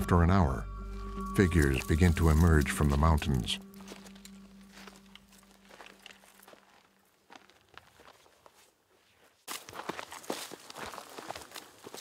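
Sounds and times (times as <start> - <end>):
footsteps on dry grass and stones: 0.8 - 12.0
footsteps on stony dirt trail: 1.0 - 12.0.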